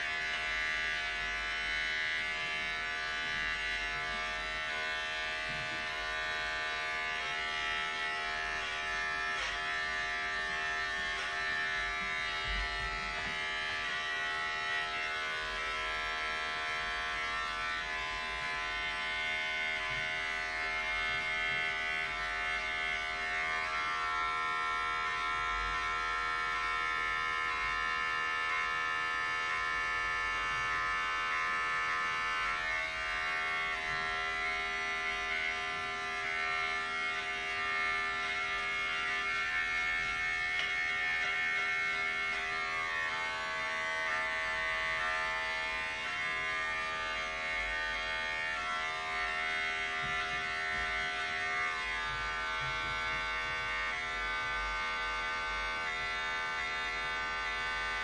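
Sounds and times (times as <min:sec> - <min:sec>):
electric hair clipper buzzing: 0:00.0 - 0:58.0.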